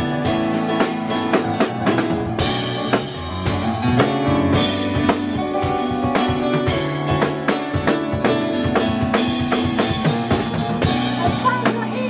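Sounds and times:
drum kit with cymbals: 0:00.0 - 0:12.0
electric piano chords: 0:00.0 - 0:12.0.

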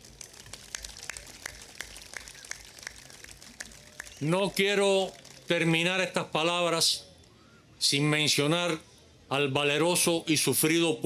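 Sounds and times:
people clapping: 0:00.0 - 0:06.1.

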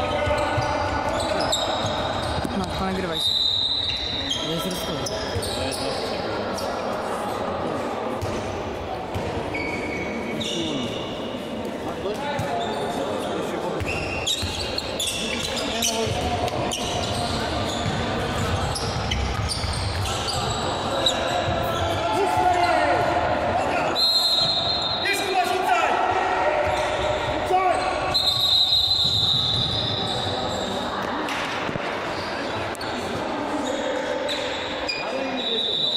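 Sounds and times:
sneakers squeaking: 0:00.0 - 0:06.8, 0:08.2 - 0:25.3, 0:26.5 - 0:35.9
referee's whistle: 0:03.1 - 0:06.0, 0:23.9 - 0:25.4, 0:27.8 - 0:30.7, 0:34.3 - 0:35.9.

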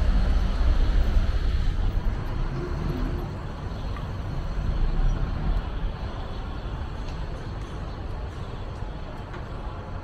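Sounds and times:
vehicles rumbling on road: 0:00.0 - 0:10.0.

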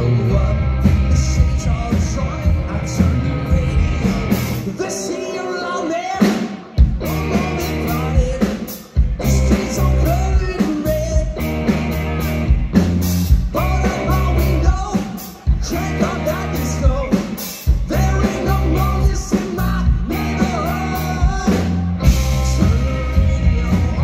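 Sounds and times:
man singing: 0:00.0 - 0:11.7, 0:13.3 - 0:24.0
drums: 0:00.0 - 0:24.0
electric guitars: 0:00.0 - 0:24.0.

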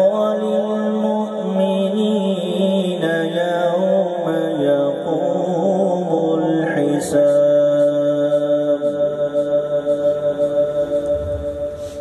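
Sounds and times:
man reciting through loudspeakers: 0:00.0 - 0:12.0.

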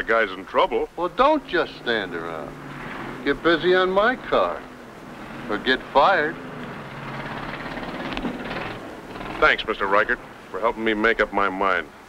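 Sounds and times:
distant race car engines: 0:00.0 - 0:12.0.

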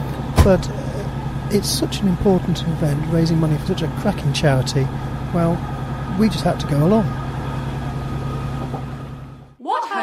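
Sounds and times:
train carriage running hum: 0:00.0 - 0:09.6.

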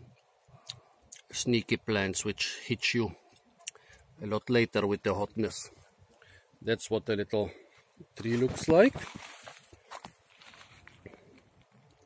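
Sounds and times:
footsteps crunching on mulch: 0:08.2 - 0:11.4.

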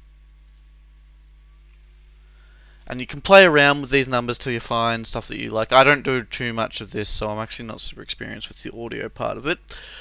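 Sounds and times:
computer mouse clicking: 0:00.0 - 0:00.7
low electrical hum: 0:00.0 - 0:10.0.

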